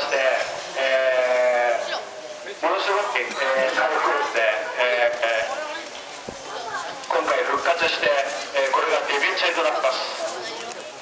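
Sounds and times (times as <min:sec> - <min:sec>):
man talking: 0:00.0 - 0:05.6, 0:07.1 - 0:10.2.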